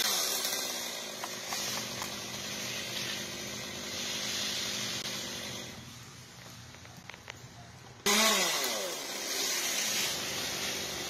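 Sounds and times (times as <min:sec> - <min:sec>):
chainsaw engine idling: 0:00.0 - 0:06.0, 0:08.1 - 0:11.0.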